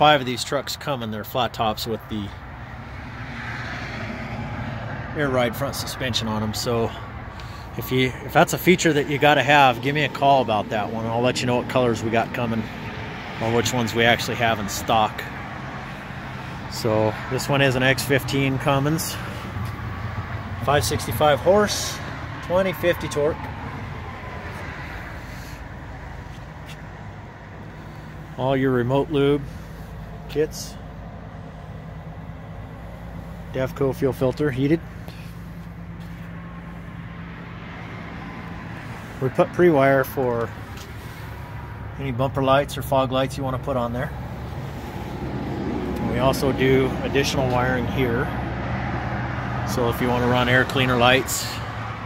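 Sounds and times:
vehicle engine idling: 0.2s - 52.0s.

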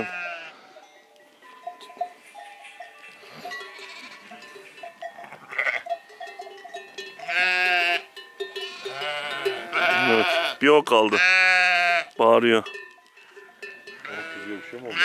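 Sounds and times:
sheep bleating: 0.0s - 0.8s, 2.4s - 6.0s, 7.2s - 12.2s, 13.9s - 15.0s
sheep bells clinking: 0.0s - 15.0s.

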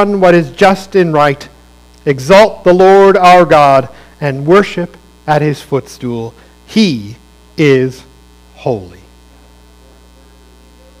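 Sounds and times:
faint hiss: 0.0s - 11.0s
low electrical hum: 0.0s - 11.0s.

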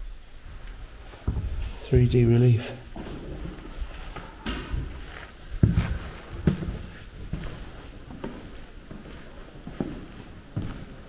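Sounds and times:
footsteps on floor: 2.9s - 11.0s.

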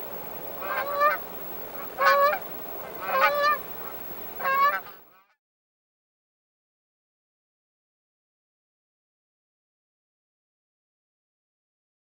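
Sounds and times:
geese honking in flight: 0.0s - 5.3s.

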